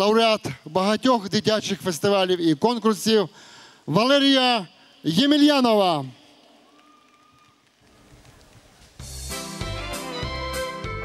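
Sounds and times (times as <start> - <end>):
sound system hiss: 7.9 - 11.0.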